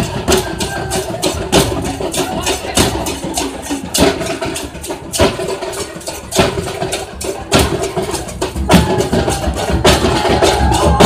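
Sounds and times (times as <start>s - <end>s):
drums beaten with sticks: 0.0s - 11.0s.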